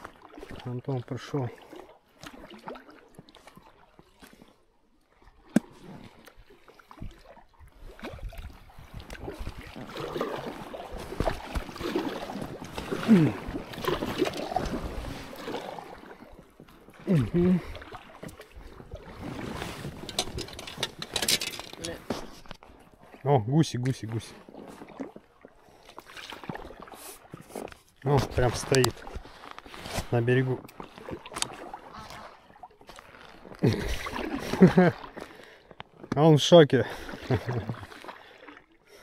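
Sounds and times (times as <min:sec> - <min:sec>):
paddle splashing water: 0:00.0 - 0:39.0.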